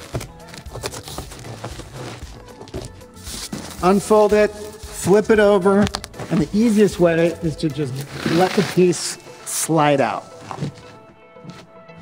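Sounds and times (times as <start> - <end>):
cardboard box handled: 0.0 - 3.8, 10.3 - 11.7
soft background music: 0.0 - 12.0
knocks and scrapes of cardboard: 10.3 - 11.7.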